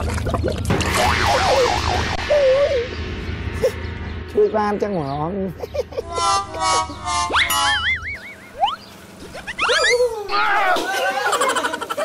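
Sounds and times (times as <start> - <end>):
wobbling boing tone: 0.7 - 3.0, 6.0 - 9.9
upward whistling glide: 6.1 - 10.3.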